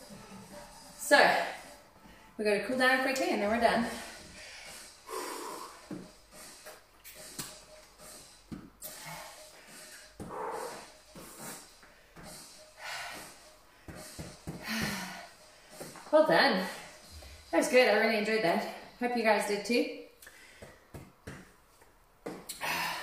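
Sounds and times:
woman breathing hard: 3.8s - 17.5s, 20.2s - 21.0s, 22.5s - 23.0s.

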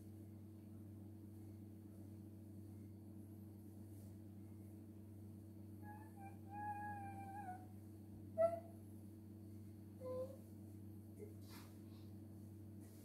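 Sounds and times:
steady low hum: 0.0s - 13.0s
high-pitched drawn-out vocal call: 5.8s - 7.6s.

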